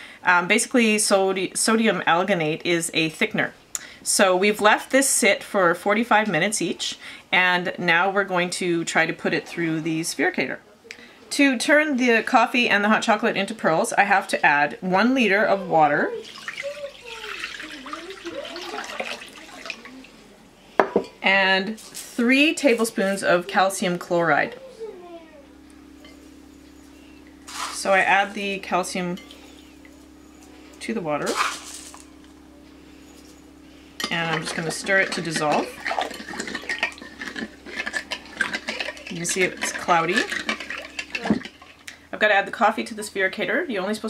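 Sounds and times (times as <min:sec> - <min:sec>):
water pouring into bowl: 0:16.2 - 0:19.9, 0:34.3 - 0:41.8
glass pitcher knocking on counter: 0:20.8 - 0:21.1.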